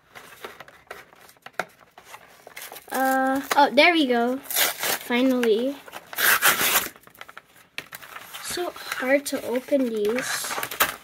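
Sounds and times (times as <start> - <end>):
cardboard tearing: 4.3 - 7.3.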